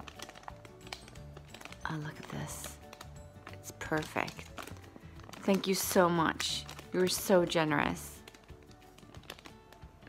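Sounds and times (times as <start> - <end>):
plastic packaging clicks and taps: 0.0 - 7.4, 8.0 - 10.0
faint background music: 0.0 - 10.0.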